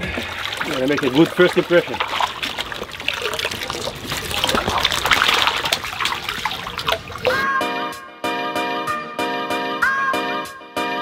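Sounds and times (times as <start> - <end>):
sharp splashes: 0.0 - 7.4
water trickling and splashing: 0.0 - 7.4.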